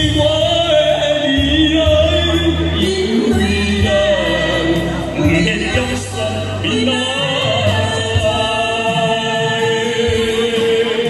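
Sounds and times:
backing music: 0.0s - 11.0s
man and woman singing a duet: 0.0s - 11.0s.

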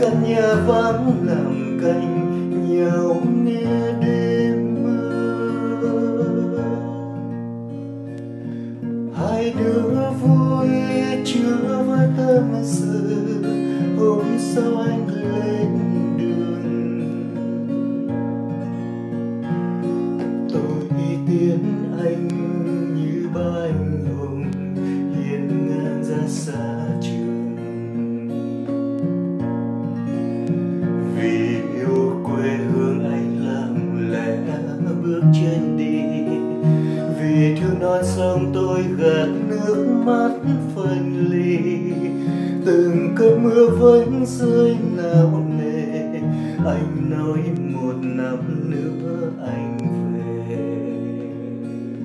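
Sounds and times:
acoustic guitar strummed and picked: 0.0s - 52.0s.

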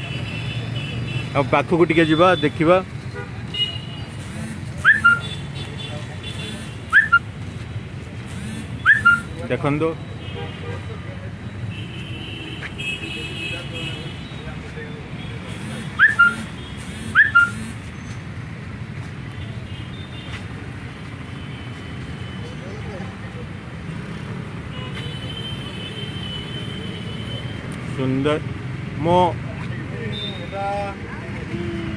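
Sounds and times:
city street traffic: 0.0s - 31.9s
vehicle horns: 2.0s - 7.2s, 10.2s - 11.0s, 11.7s - 17.9s, 24.7s - 27.7s.

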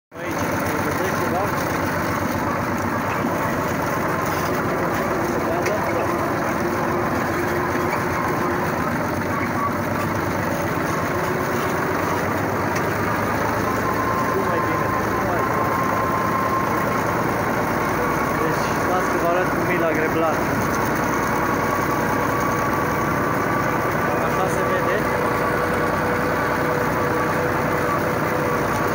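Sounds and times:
tractor engine running: 0.1s - 28.9s.

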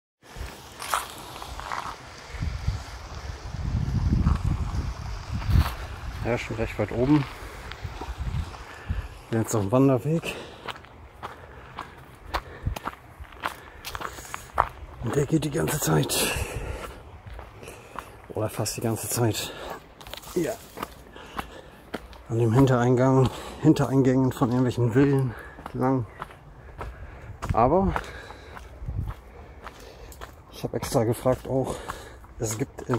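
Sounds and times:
footsteps on concrete: 0.4s - 2.0s, 7.0s - 32.9s
wind buffeting microphone: 1.6s - 9.7s, 12.2s - 17.6s, 26.2s - 29.7s.

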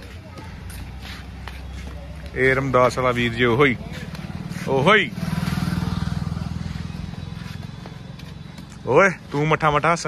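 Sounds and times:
vehicle engine pulsing: 0.0s - 10.0s.

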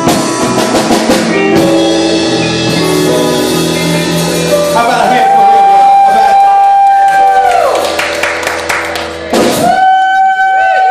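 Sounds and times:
drum and cymbal hits: 0.0s - 6.2s, 9.2s - 10.0s
live rock band: 0.0s - 10.9s.

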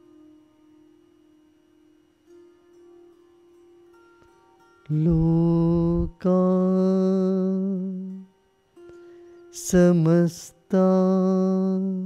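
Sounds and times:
faint steady tones: 0.0s - 12.0s
person chanting: 4.9s - 8.2s, 9.6s - 12.0s.

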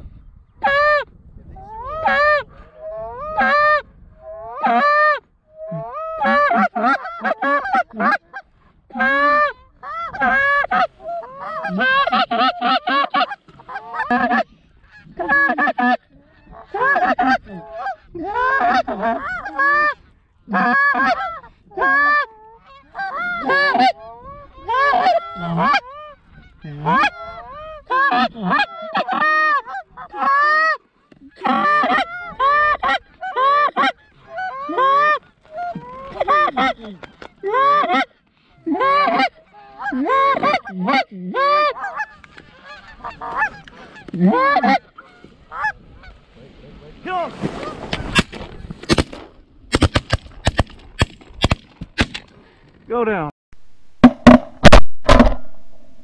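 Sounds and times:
geese honking: 1.7s - 46.3s.

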